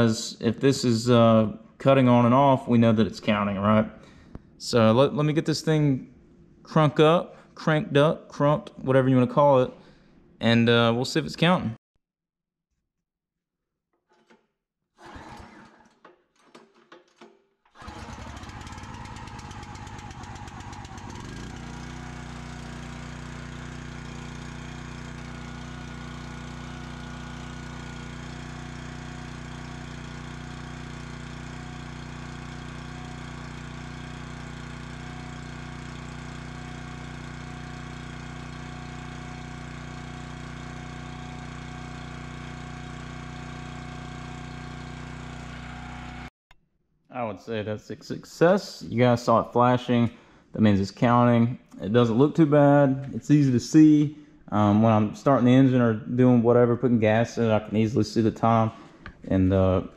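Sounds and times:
recoil starter pull: 14.0 - 46.2
small gasoline engine running: 15.0 - 15.9, 17.8 - 46.3.

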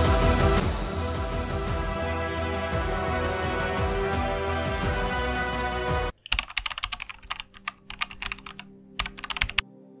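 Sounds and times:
rapid keyboard typing clicks: 6.1 - 9.6.

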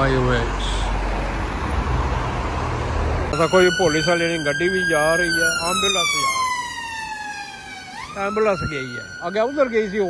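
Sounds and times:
ambulance siren wailing: 3.3 - 10.0.

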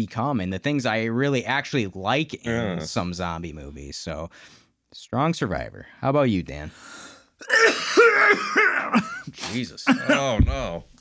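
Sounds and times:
man clearing throat: 7.4 - 10.4
man coughing: 7.4 - 10.4.

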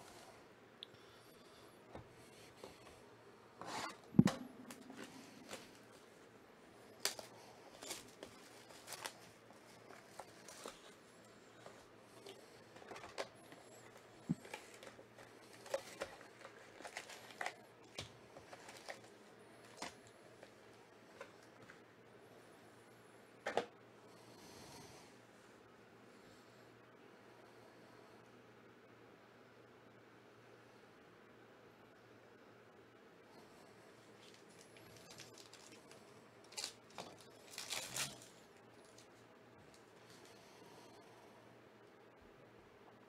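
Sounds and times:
foil packs crinkling: 7.0 - 20.6, 34.2 - 39.8.

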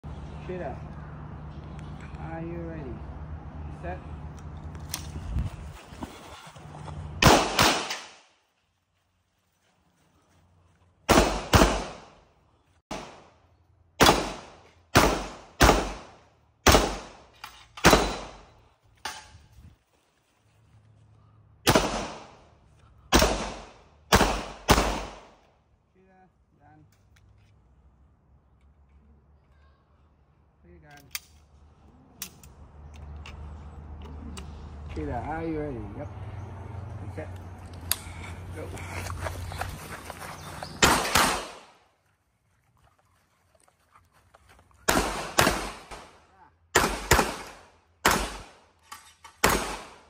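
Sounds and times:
pistol shots: 7.2 - 8.2, 11.1 - 12.2, 12.9 - 13.3, 14.0 - 18.5, 21.7 - 22.4, 23.1 - 25.4, 40.8 - 41.8, 44.9 - 48.6, 49.4 - 50.0.

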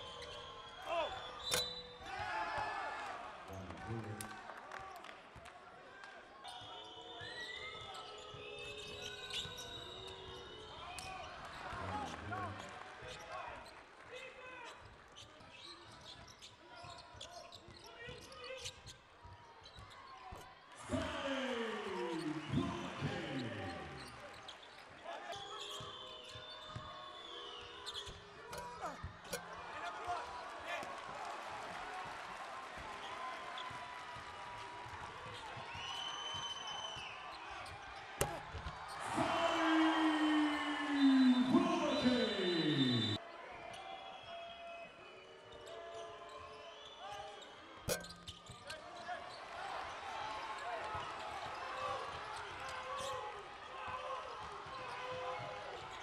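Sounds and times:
sneaker squeaks: 0.0 - 2.0, 6.4 - 12.2, 14.6 - 20.4, 24.0 - 29.5, 45.6 - 49.5, 54.6 - 56.0
voices in arena: 0.0 - 56.0.

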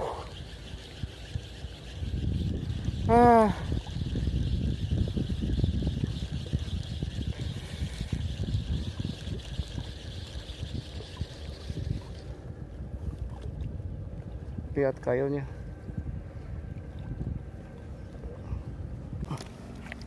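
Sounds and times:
wind buffeting: 0.0 - 14.8.

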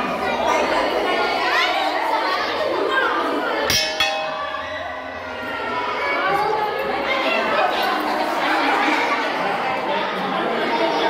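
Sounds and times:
children's voices: 0.0 - 11.0
people chattering: 0.0 - 11.0.

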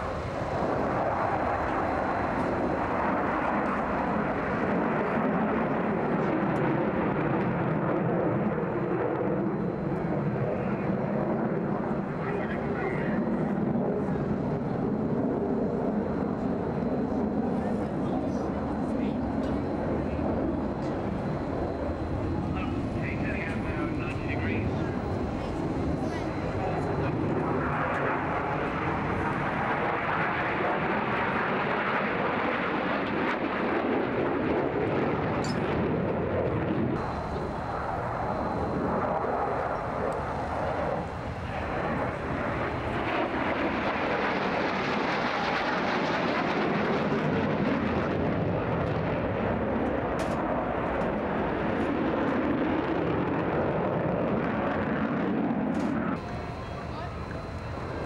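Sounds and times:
jet engine roar: 0.0 - 58.0.

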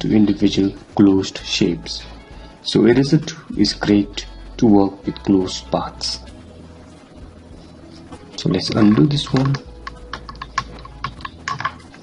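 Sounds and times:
computer keyboard clicking: 8.8 - 11.8.

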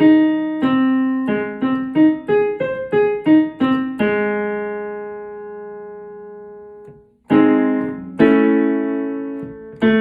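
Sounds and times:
digital piano chord: 0.0 - 10.0.

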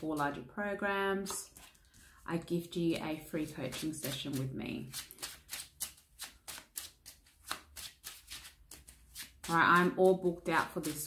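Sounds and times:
cards being shuffled: 1.2 - 2.2, 2.9 - 10.0, 10.6 - 11.0.

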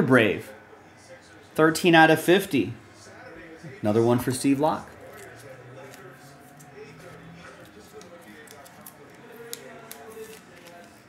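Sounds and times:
light rustling of cards: 4.9 - 11.0.

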